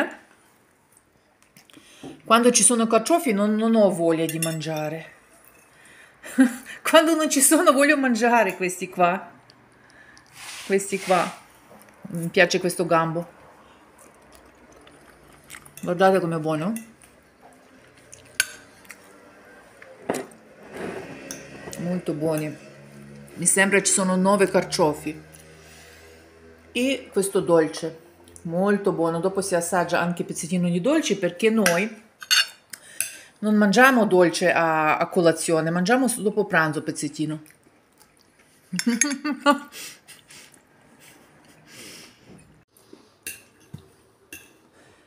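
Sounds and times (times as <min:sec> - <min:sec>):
fork scraping on ceramic plate: 0:20.1 - 0:21.8
fork clinking on ceramic plate: 0:31.6 - 0:33.2.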